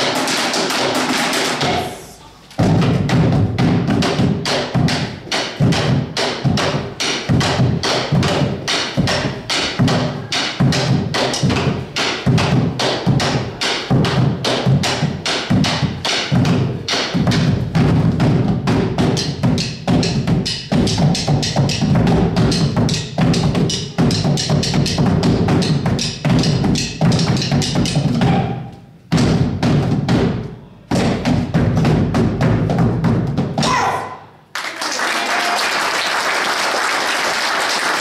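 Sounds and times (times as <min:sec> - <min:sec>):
deep drum booms: 0:01.6 - 0:33.8.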